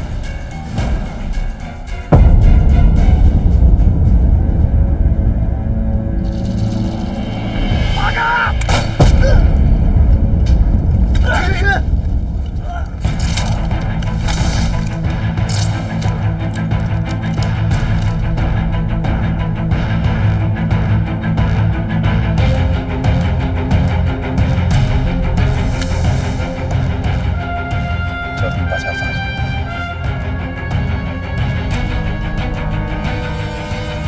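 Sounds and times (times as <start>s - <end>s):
dramatic soundtrack music: 0.0s - 34.0s.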